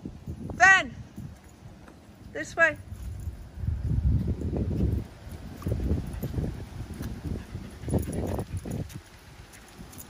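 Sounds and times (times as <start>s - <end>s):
footsteps on asphalt: 1.2s - 10.0s.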